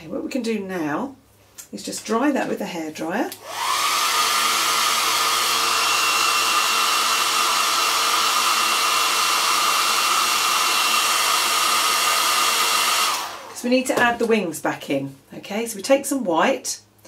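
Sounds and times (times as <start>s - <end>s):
hair dryer running: 3.3s - 14.2s.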